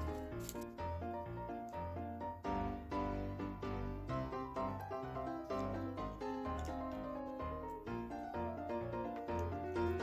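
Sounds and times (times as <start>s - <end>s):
wrapper crinkling: 0.0s - 0.7s.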